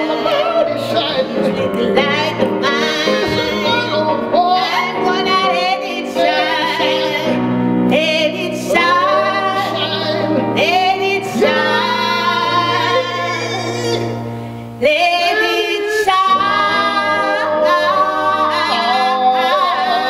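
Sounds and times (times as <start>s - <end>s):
woman and man singing gospel: 0.0s - 20.0s.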